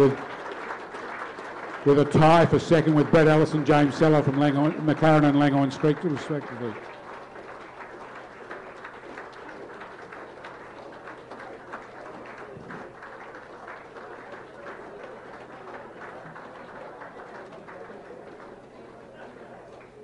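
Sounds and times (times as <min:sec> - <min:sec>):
audience applauding: 0:00.0 - 0:20.0.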